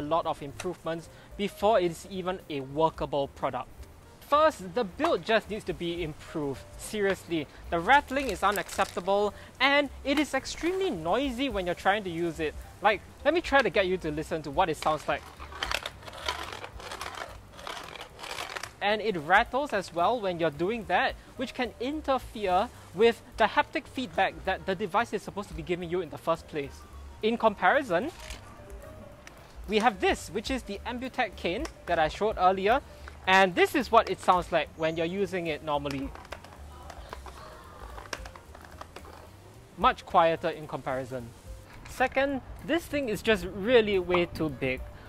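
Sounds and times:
cane rattling with clicks and scrapes: 0:06.8 - 0:09.3, 0:13.4 - 0:20.2, 0:27.9 - 0:28.5, 0:35.8 - 0:39.3.

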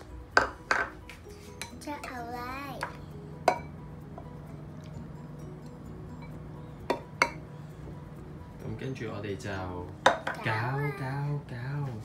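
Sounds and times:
soft background music: 0:00.0 - 0:12.0
ceramic bowls clinking: 0:00.4 - 0:01.0, 0:02.8 - 0:05.1, 0:06.2 - 0:07.5, 0:10.0 - 0:10.7.

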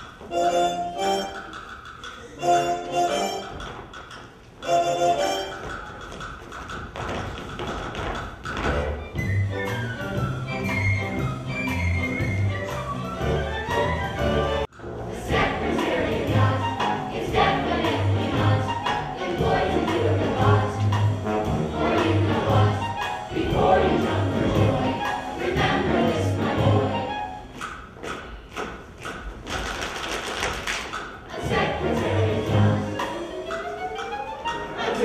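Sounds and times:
steady tapping beat: 0:00.0 - 0:35.0
pit orchestra music: 0:00.2 - 0:03.7, 0:04.6 - 0:05.9, 0:08.6 - 0:27.7, 0:31.3 - 0:35.0.

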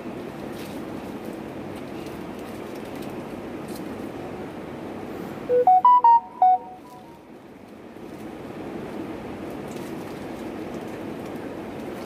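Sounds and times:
electronic beeping jingle: 0:05.5 - 0:07.0.

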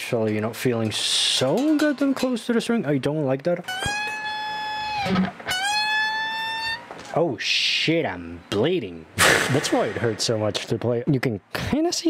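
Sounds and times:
electric guitar bent note: 0:03.7 - 0:06.9.

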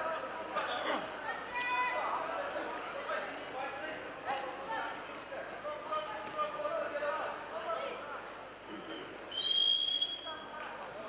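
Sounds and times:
referee's whistle blast: 0:09.4 - 0:10.4.

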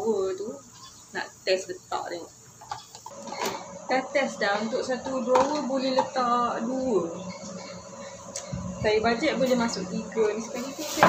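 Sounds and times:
woman's voice: 0:00.0 - 0:02.3, 0:03.4 - 0:07.8, 0:08.4 - 0:11.0.

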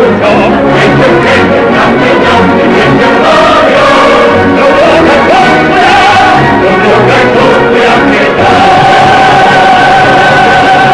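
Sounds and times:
choir singing: 0:00.0 - 0:10.9
instrumental accompaniment: 0:00.0 - 0:10.9.

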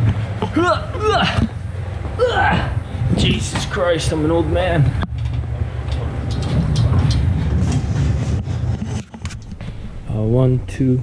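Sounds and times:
pallet jack wheels rumbling: 0:00.0 - 0:10.8
clatters and knocks: 0:05.0 - 0:10.0.

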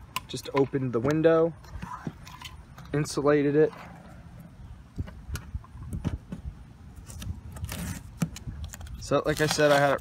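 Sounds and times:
tape peeling crackles: 0:07.0 - 0:10.0
tape ripping: 0:07.0 - 0:10.0.

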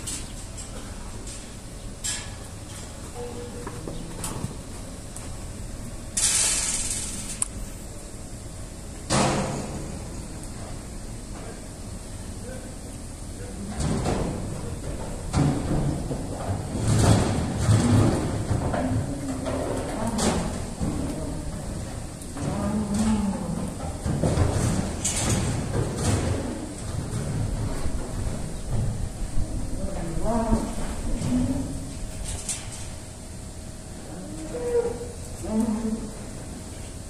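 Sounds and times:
calves mooing: 0:19.0 - 0:23.8.

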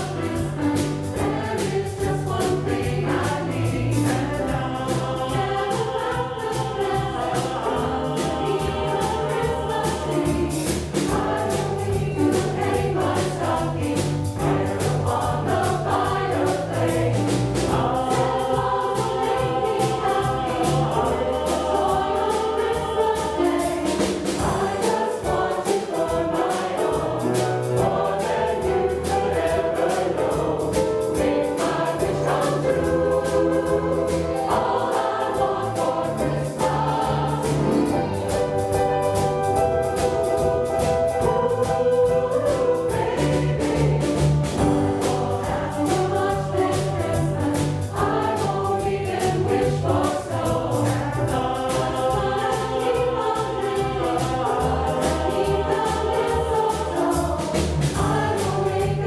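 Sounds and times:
drums: 0:00.0 - 0:59.0
mixed choir singing: 0:00.0 - 0:59.0
piano: 0:00.0 - 0:59.0
bass guitar: 0:35.9 - 0:55.7.

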